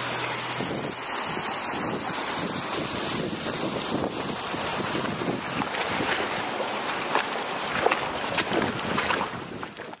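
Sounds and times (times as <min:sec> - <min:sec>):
footsteps splashing through water: 0:00.0 - 0:10.0
running water: 0:00.0 - 0:10.0
wind buffeting microphone: 0:00.0 - 0:10.0.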